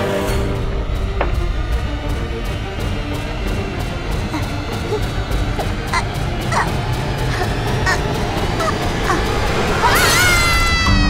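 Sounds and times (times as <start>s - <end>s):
fast ticking beat music: 2.5s - 9.8s
high yelp-like calls: 7.3s - 8.0s.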